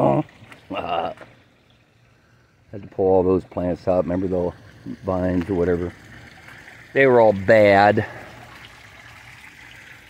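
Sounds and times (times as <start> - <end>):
water trickling over rocks: 0.0 - 10.0.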